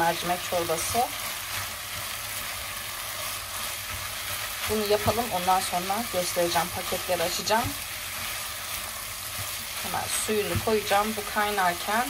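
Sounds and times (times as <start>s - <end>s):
food sizzling in a pot: 0.0s - 12.0s.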